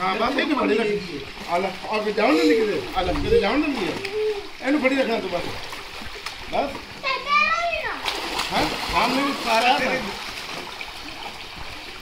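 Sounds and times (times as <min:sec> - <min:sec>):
water splashing in pool: 0:00.0 - 0:12.0
child calling out: 0:07.0 - 0:08.0.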